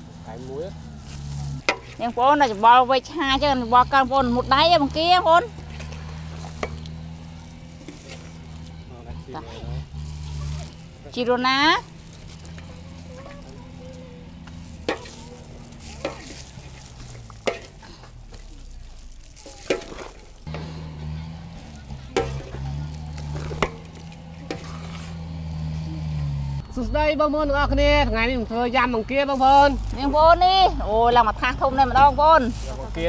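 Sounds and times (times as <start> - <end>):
metal spatulas tossing food: 1.4 - 2.6, 5.5 - 8.8, 11.8 - 25.3
food sizzling in a metal pan: 10.0 - 20.5, 21.4 - 25.1
wet rustling of noodles being tossed: 14.5 - 20.5.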